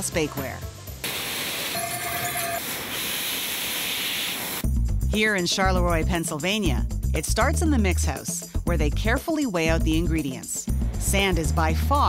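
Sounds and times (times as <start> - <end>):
loud hiss of glass machinery: 1.0 - 4.6
music with bass line: 4.6 - 12.0.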